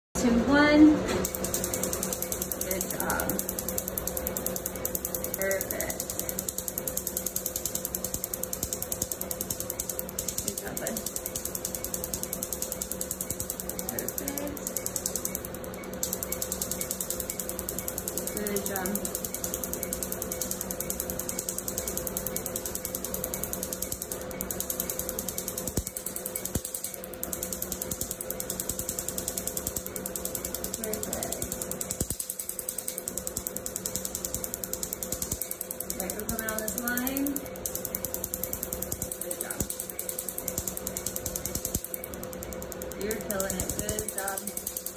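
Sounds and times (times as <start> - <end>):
laser unit hum: 0.1 - 44.9
tattoo machine buzzing and clicking: 0.2 - 44.9
laser handpiece snapping: 1.2 - 44.9.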